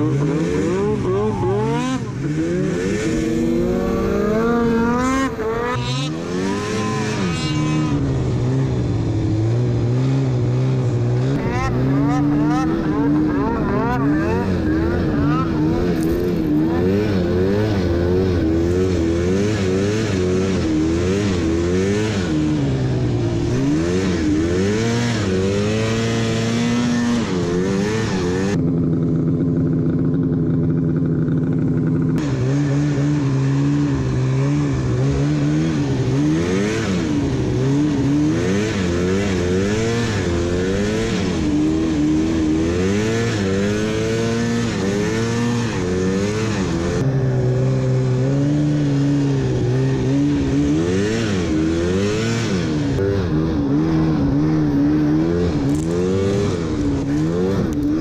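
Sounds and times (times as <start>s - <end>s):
snowmobile engine revving: 0.0s - 28.6s, 32.1s - 58.0s.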